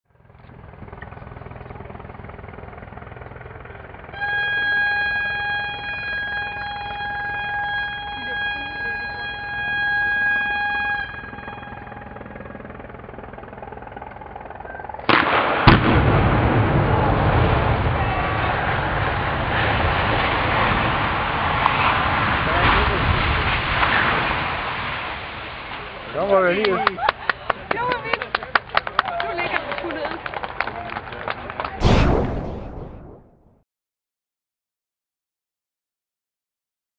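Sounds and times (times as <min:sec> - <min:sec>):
explosive blast: 0:31.8 - 0:33.6
loud rumble of collapse: 0:31.8 - 0:33.6.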